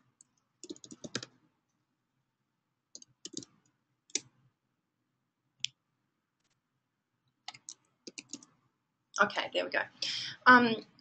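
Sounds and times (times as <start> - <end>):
faint keyboard keystrokes: 7.5 - 8.5.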